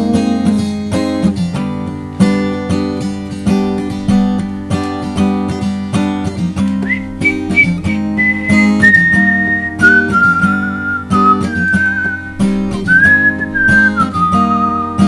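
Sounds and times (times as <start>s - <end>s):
acoustic guitar strumming: 0.0s - 15.0s
person whistling a melody: 6.8s - 15.0s.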